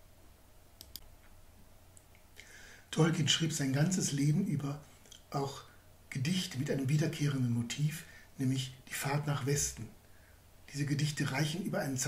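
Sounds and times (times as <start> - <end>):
short faint clicks: 0.8 - 2.3.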